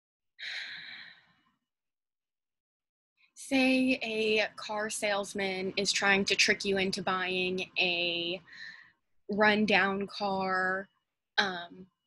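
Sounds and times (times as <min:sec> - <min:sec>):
woman breathing in: 0:00.4 - 0:01.3, 0:08.5 - 0:09.0.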